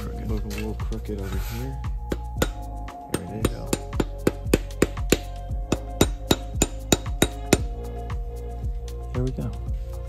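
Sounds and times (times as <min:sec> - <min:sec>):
background music: 0:00.0 - 0:10.0
sharp metallic taps: 0:02.1 - 0:07.8.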